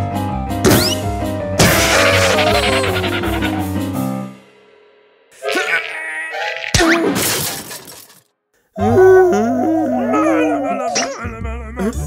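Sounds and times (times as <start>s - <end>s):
wavering warbling sound: 1.9s - 3.7s.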